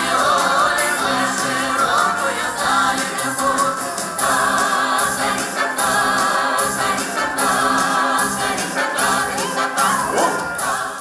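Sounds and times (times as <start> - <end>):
accompanying music: 0.0 - 11.0
folk choir singing in harmony: 0.0 - 11.0.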